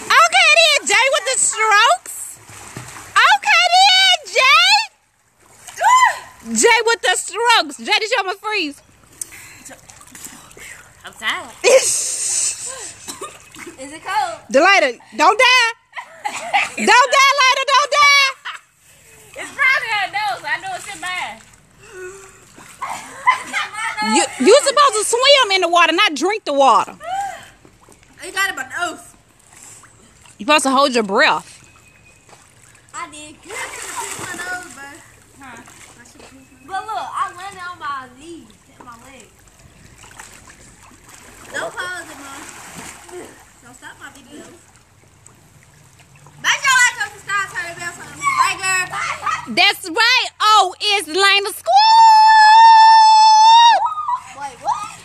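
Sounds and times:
people speaking quickly: 0.0 - 2.3, 22.8 - 27.3, 46.4 - 51.8
water splashing: 0.0 - 55.0.

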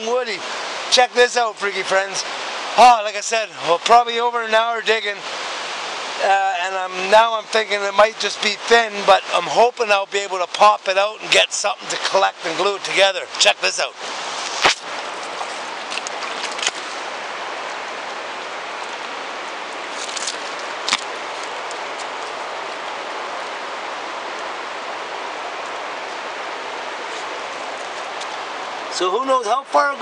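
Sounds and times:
river rapids rushing: 0.0 - 30.0.

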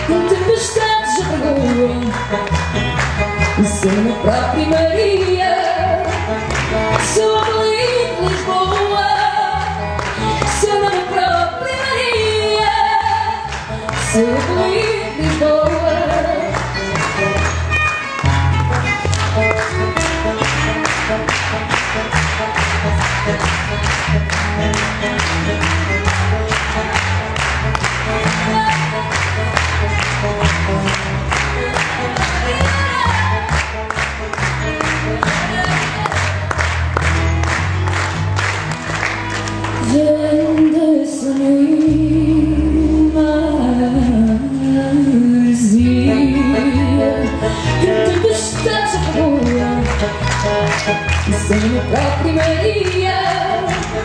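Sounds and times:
woman singing: 0.0 - 2.4, 3.6 - 6.2, 7.0 - 9.8, 10.4 - 16.6, 28.3 - 29.3, 31.6 - 33.6, 35.2 - 36.5, 39.8 - 50.4, 51.2 - 54.0
plucked guitars with bass notes: 0.0 - 54.0.

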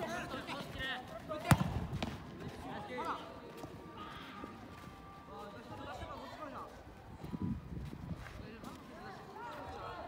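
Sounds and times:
football kicked with a thud: 1.4 - 2.2.

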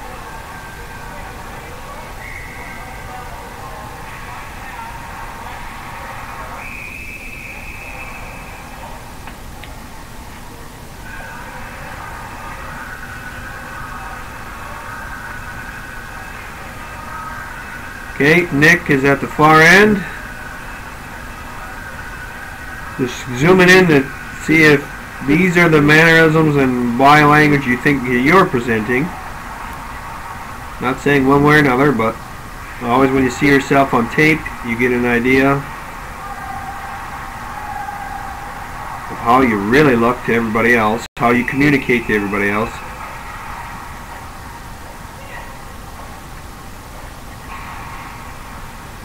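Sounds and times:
steady mechanical hum: 0.0 - 49.0.

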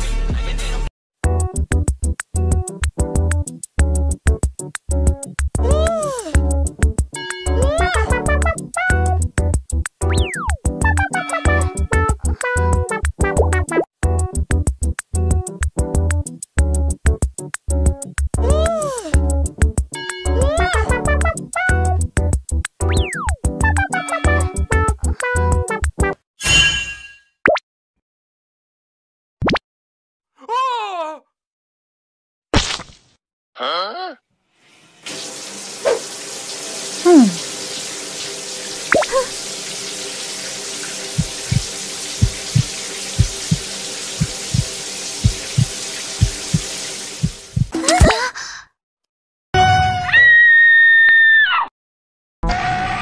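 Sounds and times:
girl shrieking: 5.6 - 6.4, 7.6 - 8.1, 18.4 - 19.2, 20.4 - 20.9, 30.4 - 31.2, 37.0 - 37.4, 49.6 - 51.7
cartoon whoosh: 37.0 - 37.4.

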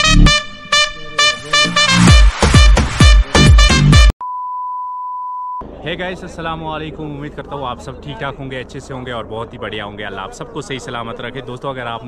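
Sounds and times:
test-tone beep: 4.2 - 5.6.

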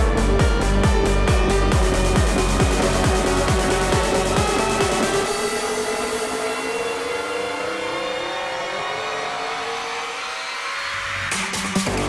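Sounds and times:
sustained synthesizer tones: 0.0 - 12.0.

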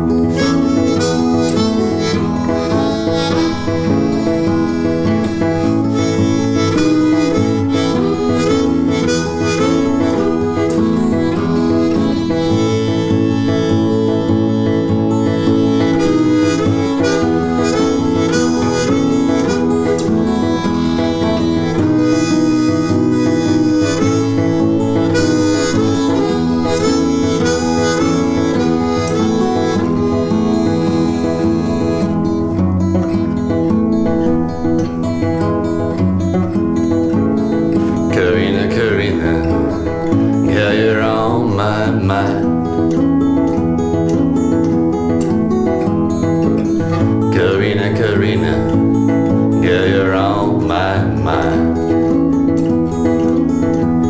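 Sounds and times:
acoustic guitar accompaniment: 0.0 - 54.0
harmonica playing: 0.0 - 54.0.

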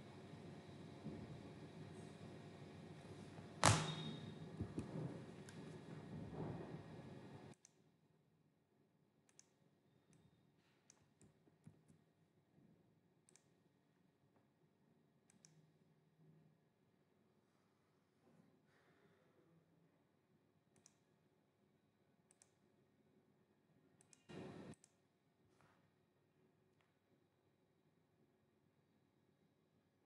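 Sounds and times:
computer mouse clicks: 9.3 - 10.2, 13.3 - 13.6, 15.3 - 15.6, 20.7 - 21.1, 22.3 - 22.6.

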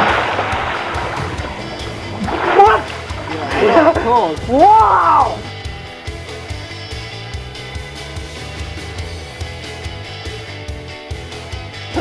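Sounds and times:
person diving into pool splash: 0.0 - 4.0
water churning and sloshing: 0.0 - 5.8.

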